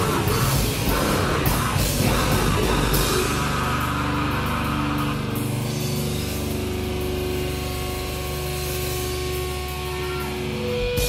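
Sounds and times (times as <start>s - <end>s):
electric guitar and bass droning: 0.0s - 11.0s
metal band playing: 0.0s - 11.0s.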